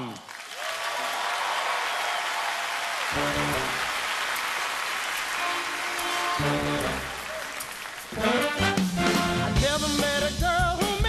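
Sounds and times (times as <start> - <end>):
large audience applauding: 0.0 - 9.5
band playing: 3.1 - 11.0.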